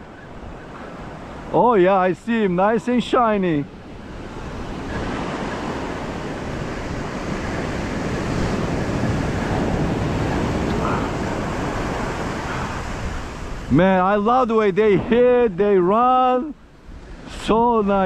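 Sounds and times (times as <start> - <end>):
ocean surf breaking on beach: 0.0 - 18.0
wind on microphone: 2.4 - 15.8, 16.6 - 18.0.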